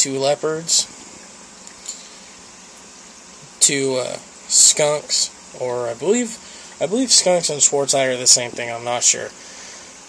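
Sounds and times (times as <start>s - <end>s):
aquarium filter watery hiss: 0.0s - 10.0s.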